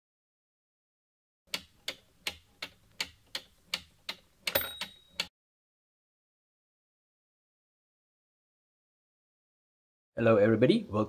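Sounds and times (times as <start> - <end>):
clock ticking: 1.5 - 5.3.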